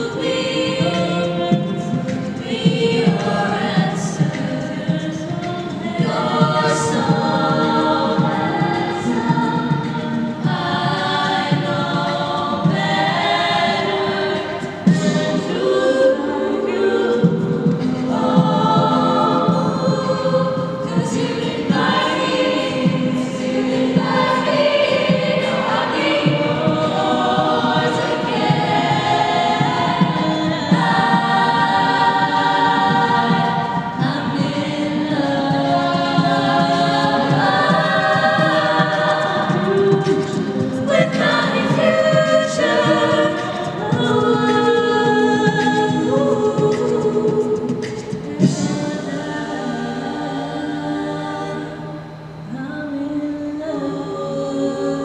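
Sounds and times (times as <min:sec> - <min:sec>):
women singing a cappella harmony: 0:00.0 - 0:55.0.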